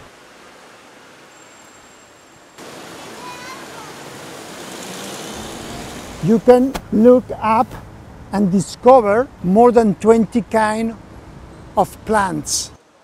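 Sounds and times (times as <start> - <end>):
city street background hiss: 0.0 - 13.0.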